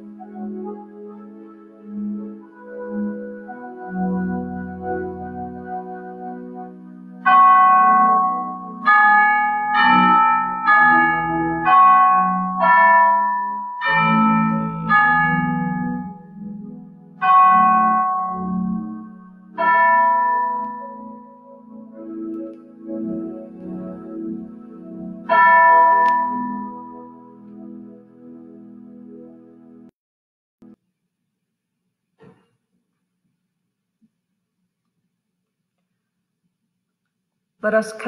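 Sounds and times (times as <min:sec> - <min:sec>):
slow piano chords: 0:00.0 - 0:29.9
soft keyboard music: 0:00.0 - 0:29.9
bell ringing: 0:07.3 - 0:16.5, 0:17.2 - 0:21.8, 0:25.2 - 0:27.5.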